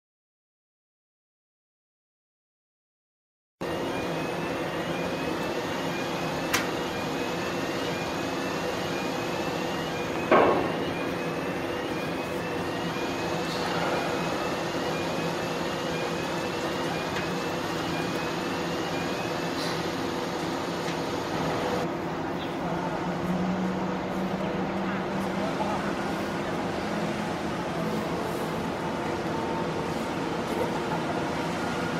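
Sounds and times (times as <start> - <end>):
ferry machinery hum: 3.6 - 31.9.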